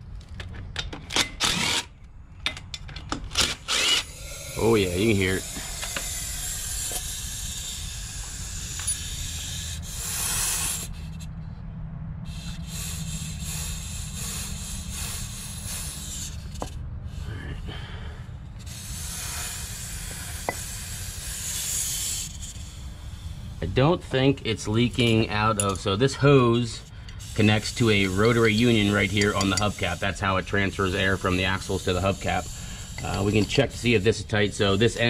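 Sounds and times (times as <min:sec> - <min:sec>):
steady low rumble: 0:01.5 - 0:35.0
compressed air hissing: 0:03.7 - 0:11.3, 0:12.2 - 0:35.0.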